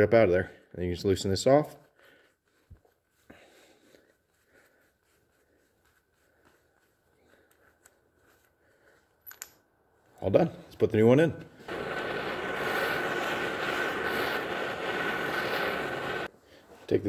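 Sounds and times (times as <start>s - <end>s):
hands unscrewing a nut: 7.5s - 9.7s.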